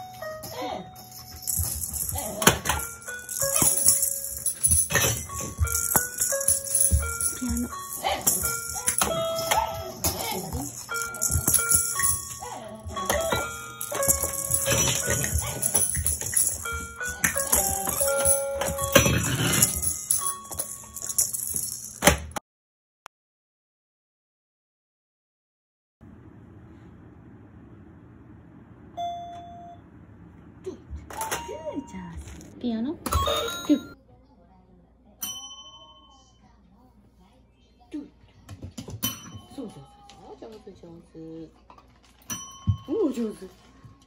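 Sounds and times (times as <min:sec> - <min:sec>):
toy tambourine and shakers jingling: 0:00.0 - 0:22.3
toy keyboard beeping notes: 0:05.3 - 0:10.1, 0:10.8 - 0:19.0.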